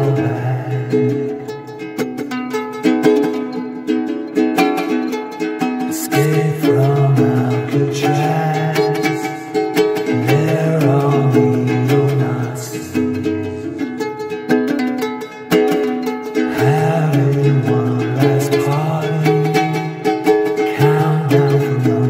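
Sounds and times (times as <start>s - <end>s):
ukulele strumming: 0.0s - 22.0s.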